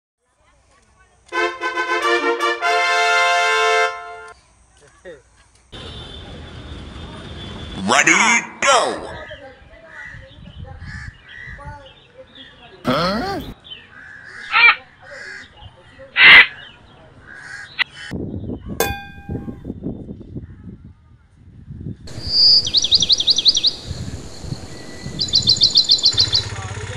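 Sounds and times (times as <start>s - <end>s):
outdoor background noise: 0.2s - 26.9s
brass-like musical phrase: 1.3s - 4.3s
harsh rasping vocal burst: 12.9s - 13.6s.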